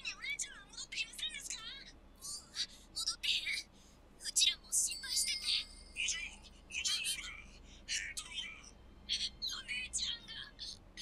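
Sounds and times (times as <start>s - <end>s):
high-pitched character voice: 4.2s - 10.8s.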